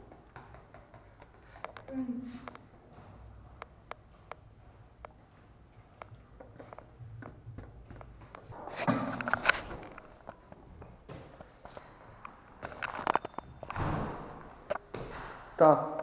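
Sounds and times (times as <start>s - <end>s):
footsteps: 0.0s - 15.6s
camera handling clicks and rustles: 9.1s - 10.2s, 12.6s - 13.4s.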